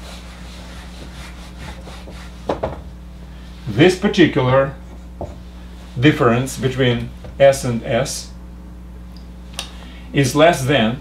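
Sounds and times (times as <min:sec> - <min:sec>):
eraser rubbing on whiteboard: 0:00.0 - 0:02.6.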